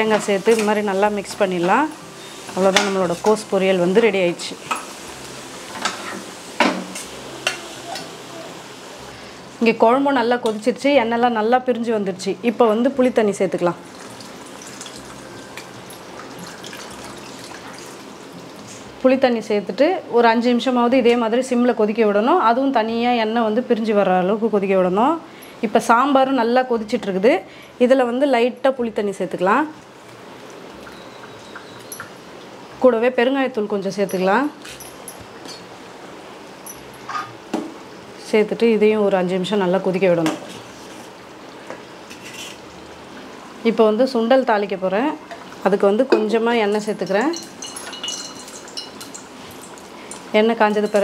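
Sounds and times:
woman speaking: 0.0s - 1.9s, 2.6s - 4.6s, 9.6s - 13.8s, 19.0s - 29.8s, 32.8s - 34.6s, 38.2s - 40.4s, 43.6s - 47.4s, 50.3s - 51.0s
pot simmering with faint hiss: 12.2s - 19.1s, 29.1s - 37.2s, 37.8s - 51.0s
liquid pouring into a pot: 13.8s - 18.6s
curry bubbling: 13.8s - 18.7s.

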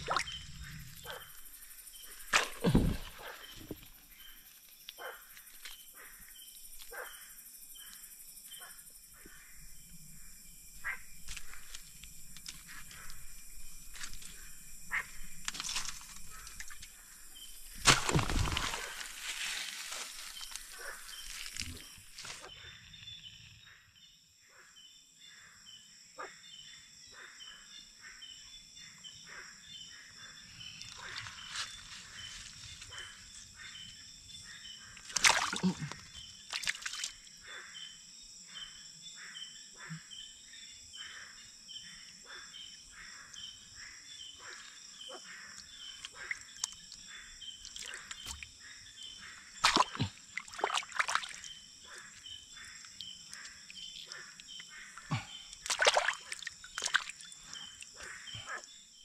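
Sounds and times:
hands splashing in stream: 0.0s - 0.4s, 2.2s - 4.0s, 17.6s - 22.5s, 35.0s - 37.2s, 49.6s - 51.6s, 55.0s - 57.9s
night insects and frogs chorus: 0.0s - 59.0s
wet bamboo leaves rustling: 15.4s - 16.9s, 17.6s - 22.5s, 30.9s - 33.0s.

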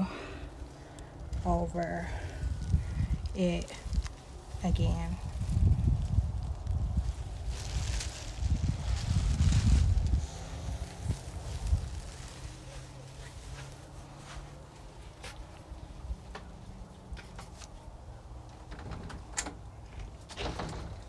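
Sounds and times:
wind buffeting microphone: 0.0s - 13.6s.

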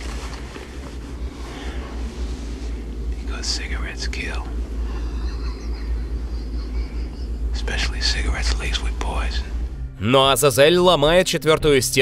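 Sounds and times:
steady low rumble: 0.0s - 12.0s
man speaking: 7.6s - 12.0s.

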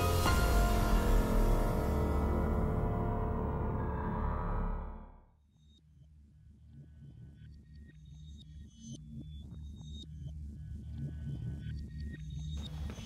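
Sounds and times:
low steady drone: 0.0s - 5.2s.

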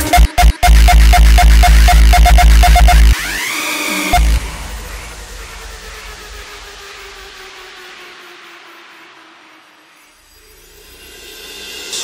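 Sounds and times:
low held synth tones: 0.0s - 3.5s, 4.1s - 7.4s.

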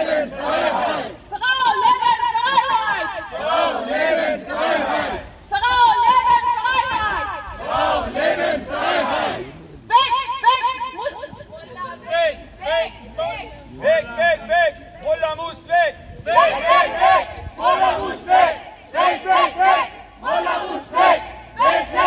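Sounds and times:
crowd chanting through loudspeaker: 0.0s - 5.6s, 7.0s - 9.6s, 15.6s - 22.0s.

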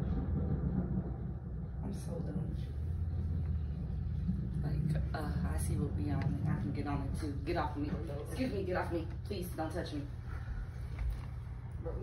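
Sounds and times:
low rumble: 0.0s - 12.0s
muffled voices: 0.0s - 12.0s.

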